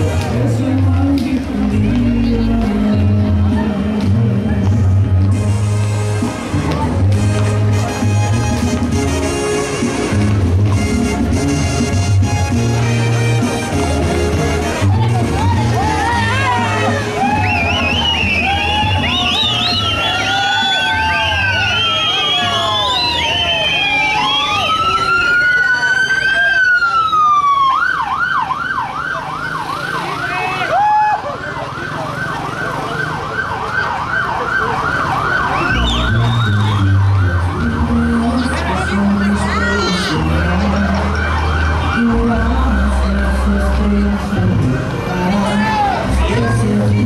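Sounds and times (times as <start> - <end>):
music with low bass line: 0.0 - 23.0, 35.7 - 47.0
vehicle siren wailing and yelping: 15.5 - 44.0.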